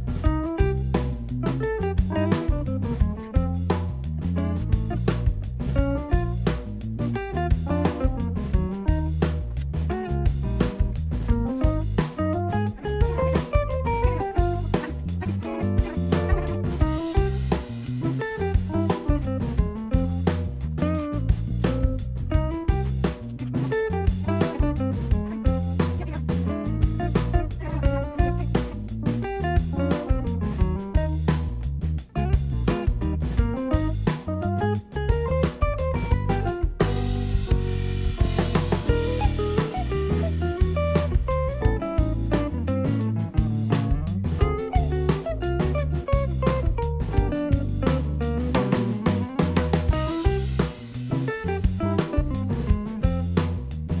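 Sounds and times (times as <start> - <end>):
guitar music: 0.0 - 54.0
steady drum beat: 0.0 - 54.0.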